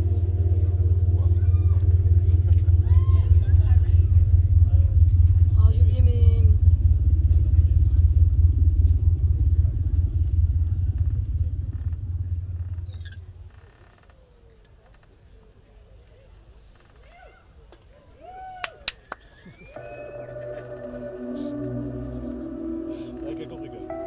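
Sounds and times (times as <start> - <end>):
held pitched chord: 0.0 - 13.4, 19.8 - 24.0
deep rumbling drone: 0.0 - 14.0, 19.7 - 24.0.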